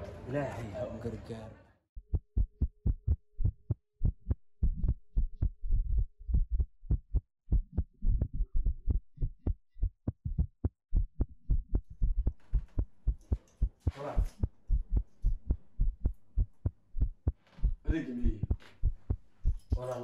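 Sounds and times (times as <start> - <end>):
heartbeat thumps: 2.0 - 20.0.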